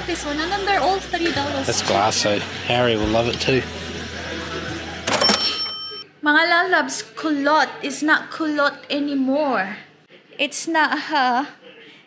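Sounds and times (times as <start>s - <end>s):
shop background noise: 0.0s - 10.9s
cash register bell ring: 5.0s - 6.0s.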